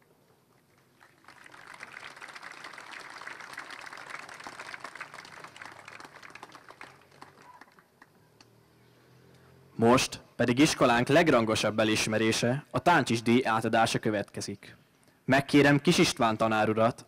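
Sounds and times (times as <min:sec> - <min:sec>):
audience applause: 0:00.6 - 0:08.2.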